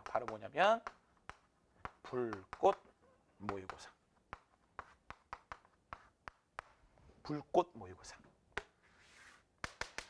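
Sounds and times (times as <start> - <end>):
chalk tapping on chalkboard: 0.0 - 6.8, 9.6 - 10.0.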